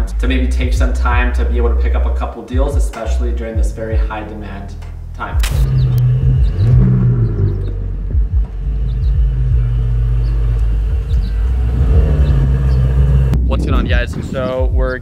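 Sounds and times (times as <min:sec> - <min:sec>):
sports car engine at low speed: 0:05.4 - 0:13.4.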